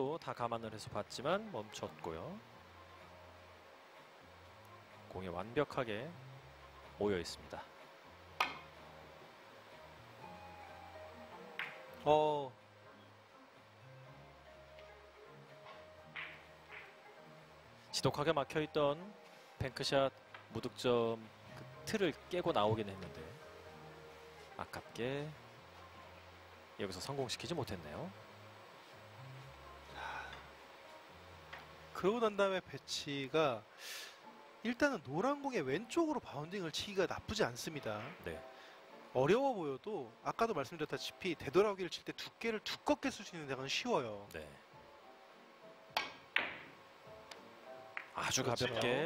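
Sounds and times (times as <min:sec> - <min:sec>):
billiard balls colliding: 0:08.4 - 0:08.8, 0:11.4 - 0:12.0, 0:15.6 - 0:17.0, 0:45.9 - 0:48.9
cue tip striking ball: 0:08.4 - 0:08.8, 0:11.4 - 0:12.0, 0:15.6 - 0:17.0, 0:45.9 - 0:48.2.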